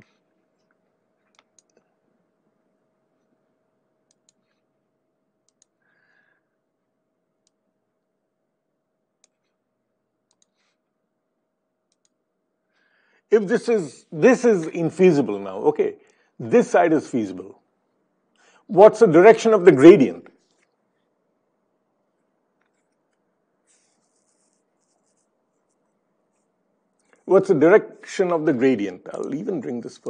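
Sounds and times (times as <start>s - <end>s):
computer mouse clicks: 1.2s - 1.8s, 4.1s - 4.6s, 5.4s - 5.8s, 9.2s - 9.6s, 10.3s - 10.8s, 11.9s - 12.2s
faint scratching: 23.6s - 26.6s.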